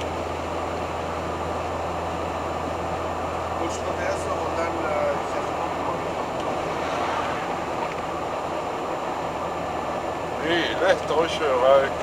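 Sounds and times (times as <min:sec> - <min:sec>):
engine and road noise in cab: 0:00.0 - 0:12.0.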